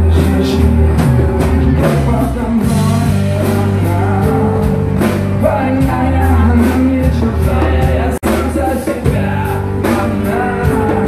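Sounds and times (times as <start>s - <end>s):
bass guitar: 0.0s - 11.0s
man singing: 0.0s - 11.0s
steady drum beat: 0.0s - 11.0s.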